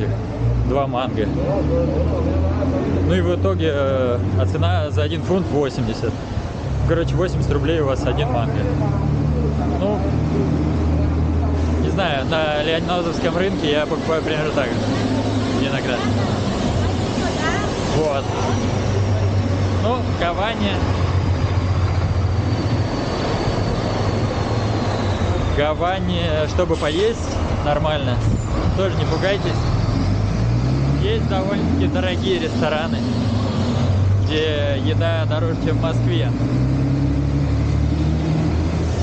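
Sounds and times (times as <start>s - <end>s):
diesel truck engine rumbling: 0.0s - 39.0s
street noise: 0.0s - 39.0s.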